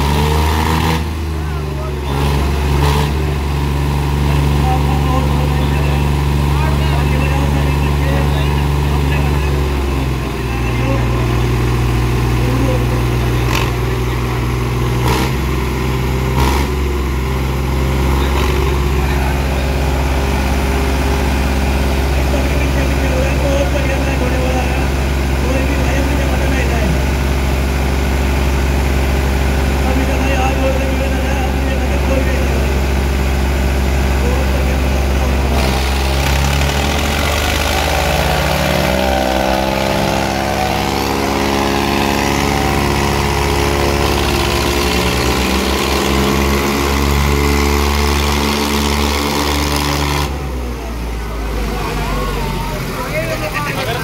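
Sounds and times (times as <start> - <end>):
tractor diesel engines running: 0.0 - 54.0.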